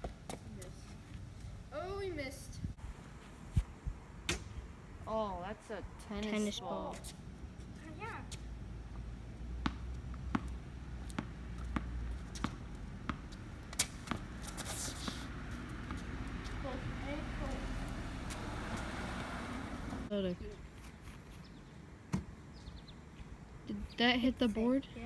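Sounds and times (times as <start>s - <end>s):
tennis ball bouncing on concrete: 9.5s - 17.6s
car passing: 14.2s - 20.1s.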